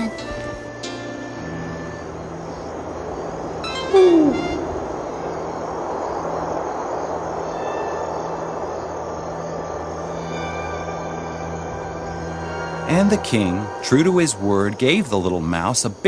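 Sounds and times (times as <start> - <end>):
quiet background music: 0.0 - 6.6, 7.2 - 16.0
steady hiss: 0.0 - 16.0
owl hoot: 3.6 - 5.4.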